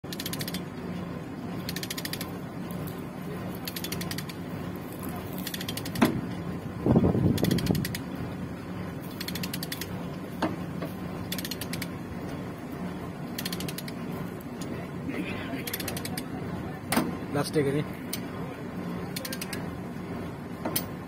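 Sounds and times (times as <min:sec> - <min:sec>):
ratchet pawl clicking: 0:00.0 - 0:00.6, 0:01.6 - 0:02.3, 0:03.5 - 0:06.1, 0:07.3 - 0:08.1, 0:09.0 - 0:09.9, 0:11.3 - 0:11.9, 0:13.3 - 0:14.0, 0:15.6 - 0:16.3, 0:19.1 - 0:19.6.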